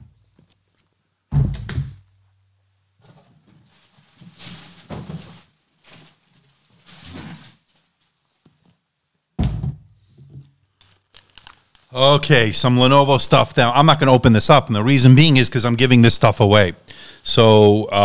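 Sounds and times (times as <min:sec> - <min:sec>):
cardboard sliding and rubbing: 0:03.1 - 0:08.0.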